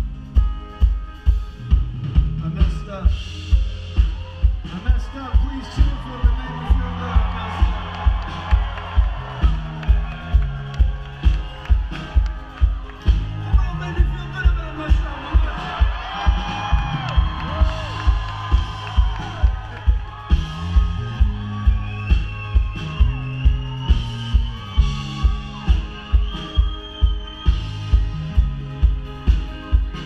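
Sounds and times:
bass line: 0:00.0 - 0:30.0
live band through pa system: 0:00.0 - 0:30.0.

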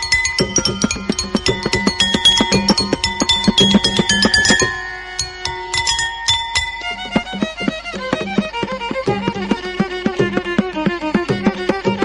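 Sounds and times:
water-filled bowls struck with sticks: 0:00.0 - 0:07.0.

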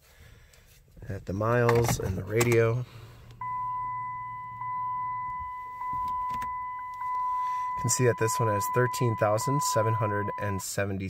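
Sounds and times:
dashboard warning chime: 0:03.3 - 0:10.7.

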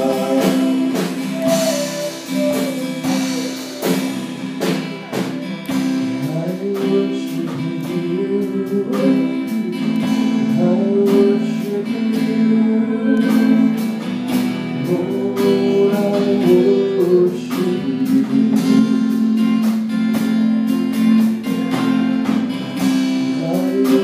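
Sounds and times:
voices singing: 0:00.0 - 0:14.0
strummed acoustic guitar: 0:00.0 - 0:24.0.

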